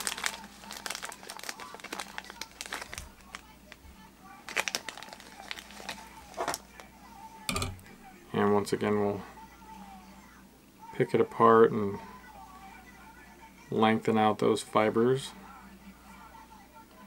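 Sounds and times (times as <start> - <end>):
plastic packet crinkling: 0.0 - 3.8, 4.4 - 6.9.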